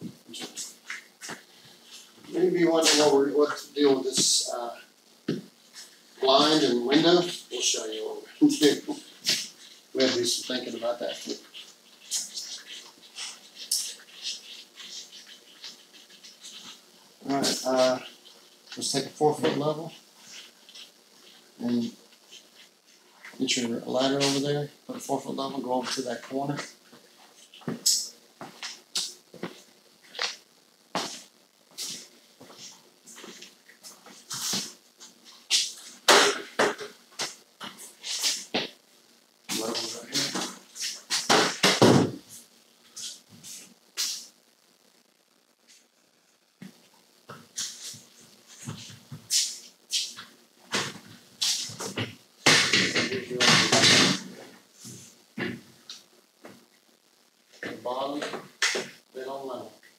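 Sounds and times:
indistinct voices: 9.9 - 11.5.

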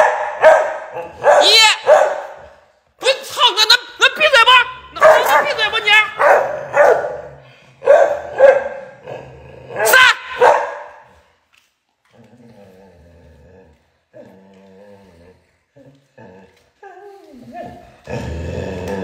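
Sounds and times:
dog barking: 0.0 - 2.5, 5.0 - 8.9, 9.8 - 11.0.

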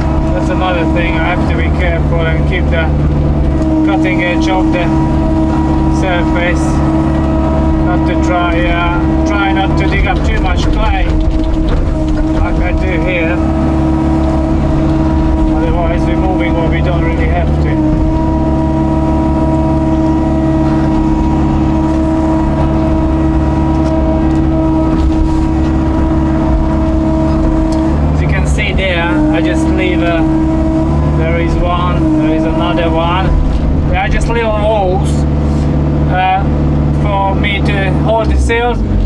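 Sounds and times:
diesel engine under load: 0.0 - 39.0
hydraulic whine: 0.0 - 39.0.

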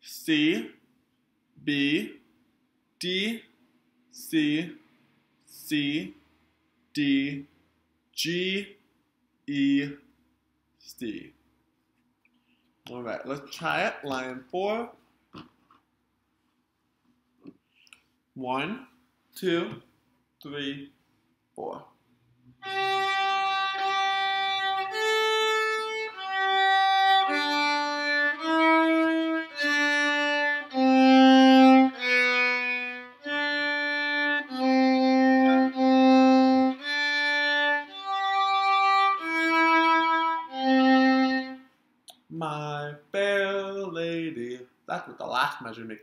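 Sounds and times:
solo violin bowed notes: 22.6 - 41.6.

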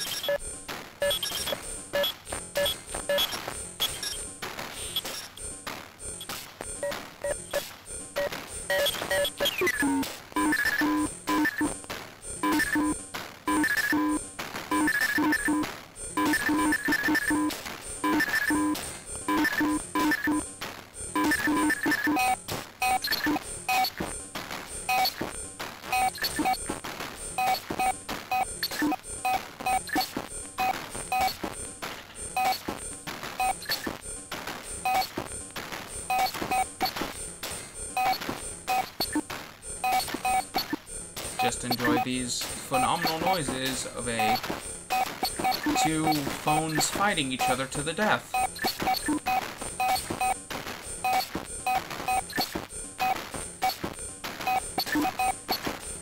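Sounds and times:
rapid stutter of clicks: 0.0 - 56.0
synthesizer beeps and tones: 1.0 - 5.4, 6.2 - 11.8, 12.4 - 20.4, 21.1 - 24.0, 25.9 - 26.7, 27.4 - 31.4, 39.8 - 40.8, 41.4 - 47.6.

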